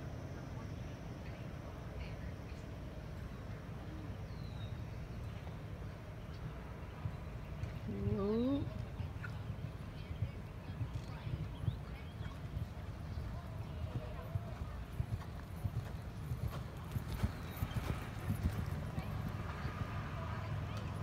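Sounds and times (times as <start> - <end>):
horse hoofbeats on sand: 7.0 - 21.0.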